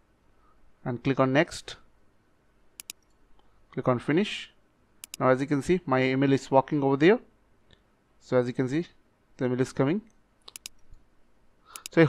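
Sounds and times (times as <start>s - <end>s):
computer mouse clicks: 2.8s - 3.5s, 5.0s - 5.2s, 10.5s - 11.0s, 11.7s - 12.0s.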